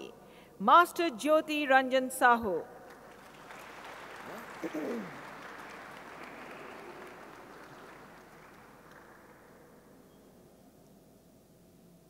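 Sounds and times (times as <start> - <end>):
audience applauding: 2.9 - 10.1.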